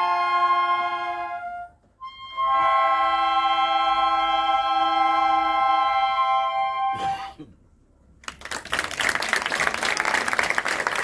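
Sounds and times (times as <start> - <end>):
wind ensemble holding a chord: 0.0 - 7.4.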